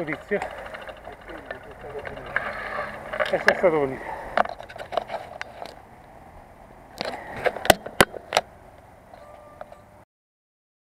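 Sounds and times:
bike rolling over dirt: 0.0s - 5.4s
bike frame rattling and clicking: 0.0s - 5.8s.

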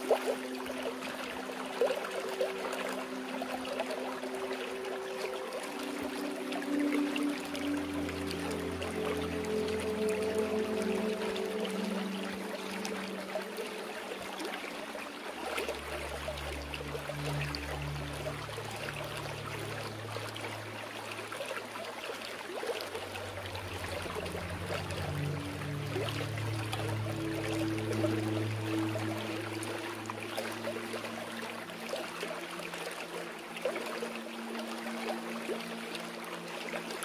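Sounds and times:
flowing water: 0.0s - 37.0s.

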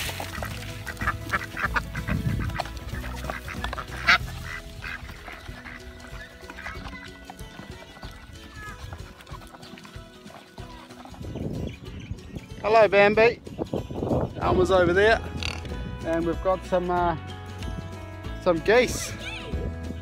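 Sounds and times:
duck bills clicking in feed: 0.0s - 8.2s
background music: 0.0s - 20.0s.

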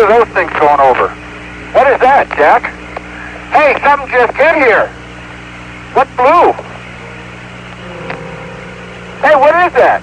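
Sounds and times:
radio hiss: 0.0s - 8.2s, 8.8s - 10.0s
faint steady tone: 2.6s - 10.0s
low hum: 2.6s - 10.0s.

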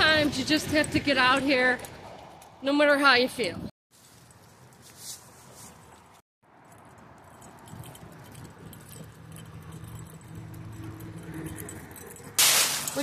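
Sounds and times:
faint traffic hum: 0.0s - 13.0s
rustling of dry leaves: 3.9s - 6.2s
metal chain leash clinking: 6.6s - 13.0s.

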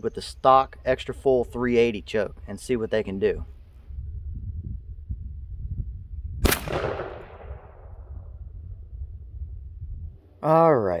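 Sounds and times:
shotgun shot: 6.4s - 8.1s.

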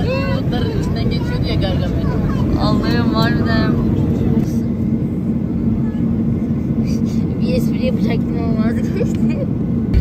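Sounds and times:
jet engine and airflow roar: 0.0s - 10.0s
steady cabin hum: 0.0s - 10.0s.

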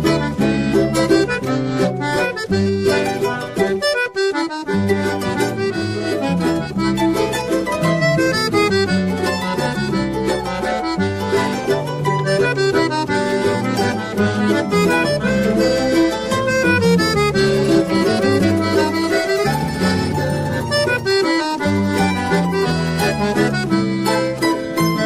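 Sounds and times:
instrumental choro ensemble: 0.0s - 25.0s.

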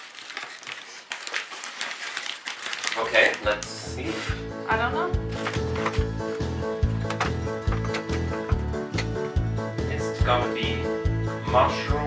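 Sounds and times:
flour bag rustling and crinkling: 0.0s - 4.4s.

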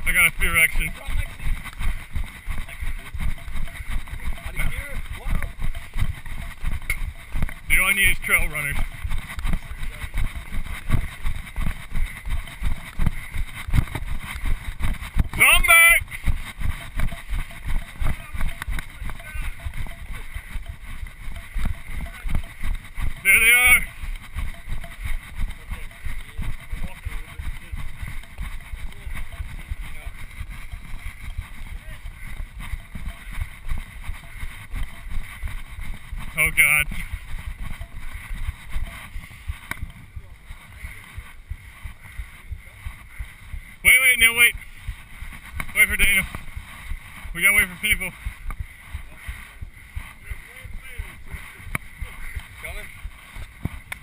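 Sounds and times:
footfalls on dirt trail: 0.0s - 54.0s.

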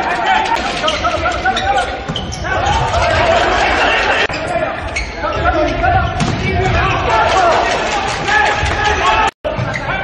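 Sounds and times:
loud crowd voices: 0.0s - 10.0s.

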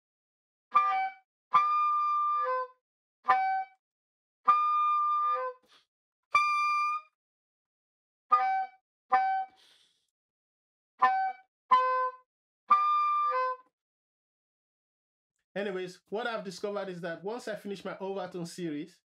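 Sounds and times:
soprano saxophone overtones: 3.3s - 3.7s, 6.3s - 7.1s, 8.3s - 9.6s, 11.0s - 13.6s.

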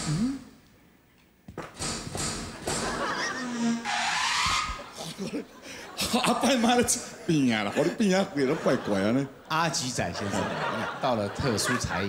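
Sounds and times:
men laughing: 2.6s - 3.9s, 4.7s - 12.0s.

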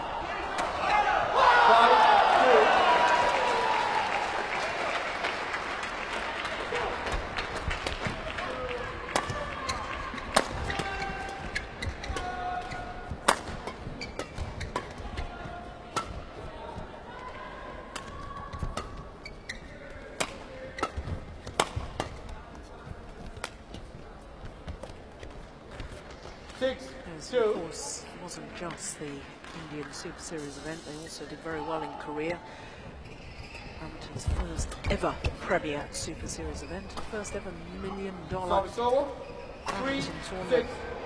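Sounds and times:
crowd noise: 0.0s - 41.0s
rackets hitting shuttlecock: 9.1s - 16.3s, 20.1s - 22.2s
shoes squeaking on court: 9.1s - 16.9s, 18.0s - 26.8s, 33.0s - 40.8s.

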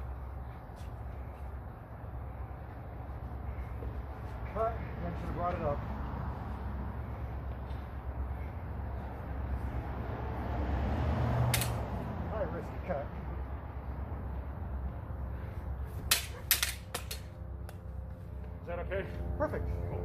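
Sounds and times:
swords clacking together: 11.5s - 11.8s, 16.1s - 17.3s.

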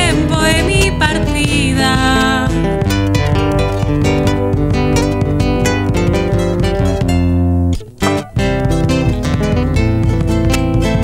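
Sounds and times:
acoustic guitar strumming: 0.0s - 11.0s
bass drum beats: 0.0s - 11.0s.

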